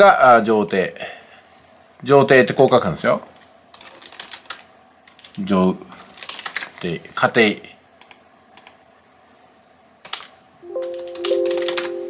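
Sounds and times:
keyboard keystrokes: 10.1 - 12.0.

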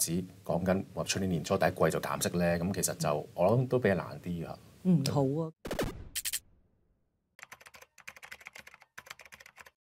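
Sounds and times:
rapid keyboard typing clicks: 7.4 - 9.8.

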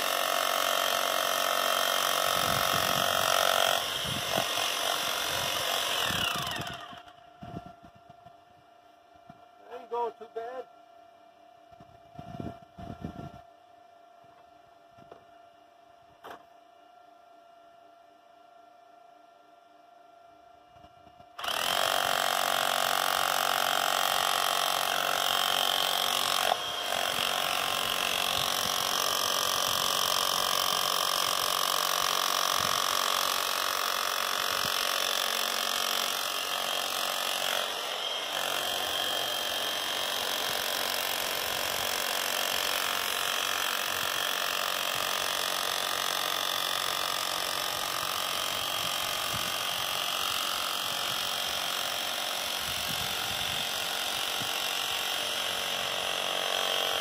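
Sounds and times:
machine motor whining: 3.8 - 7.2.

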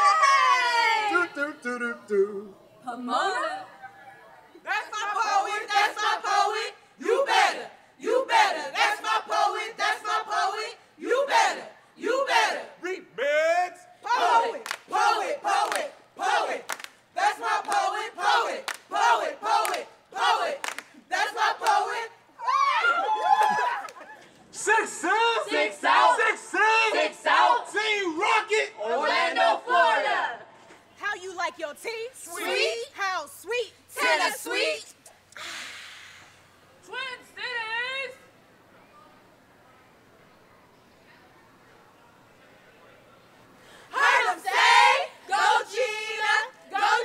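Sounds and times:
group chanting in unison: 4.7 - 12.9, 14.0 - 22.2, 24.7 - 30.4, 34.0 - 34.8, 43.8 - 47.0
breathy exhale hiss: 35.4 - 36.6.

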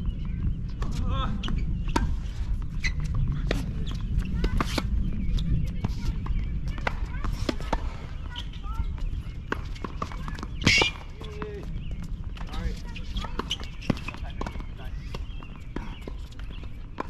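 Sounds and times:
footsteps on hard court: 0.1 - 17.0
faint voices: 3.1 - 17.0.

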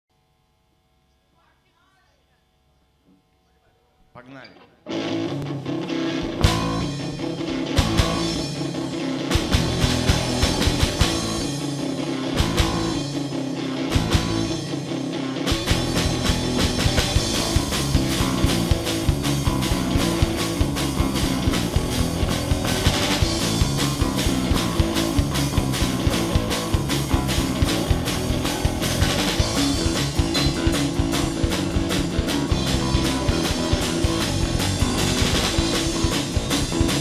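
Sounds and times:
bass guitar: 4.4 - 37.0
drum kit: 4.4 - 37.0
electric guitar: 4.4 - 37.0.

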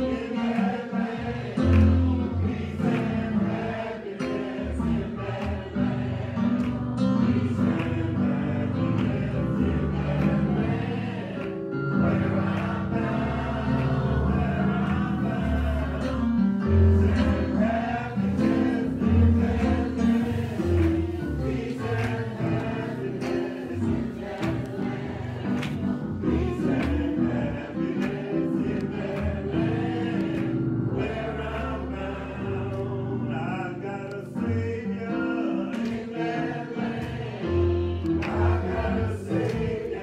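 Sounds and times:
gospel choir singing: 0.0 - 40.0
keyboard: 0.0 - 40.0.

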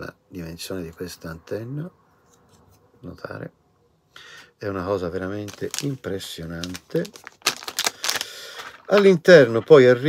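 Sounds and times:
plastic bag crinkling: 5.2 - 10.0.

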